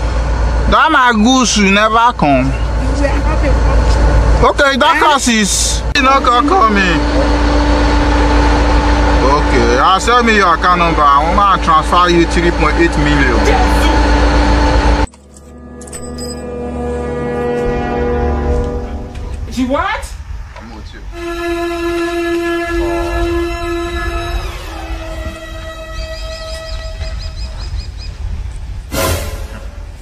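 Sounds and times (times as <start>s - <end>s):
low rumbling inside car: 0.0s - 15.1s
low rumble: 2.4s - 30.0s
music with long held tones: 6.0s - 19.4s
high bird-like chirps: 25.9s - 28.2s.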